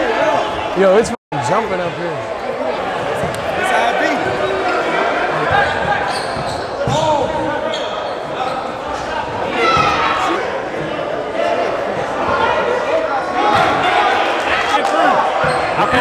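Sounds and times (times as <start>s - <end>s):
crowd talking and calling: 0.0s - 16.0s.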